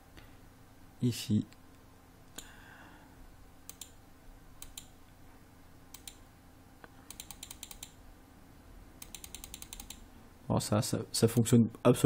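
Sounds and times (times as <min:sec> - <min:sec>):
computer keyboard and mouse clicks: 0:03.7 - 0:04.0, 0:04.6 - 0:04.9, 0:05.9 - 0:06.2, 0:07.1 - 0:08.0, 0:09.0 - 0:10.0.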